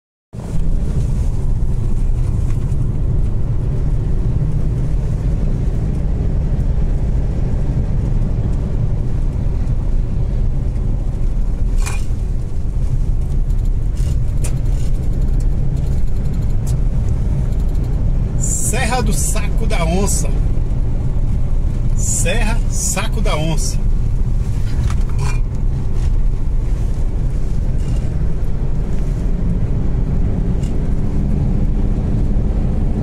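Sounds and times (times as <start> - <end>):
car driving on asphalt: 0.4 - 33.0.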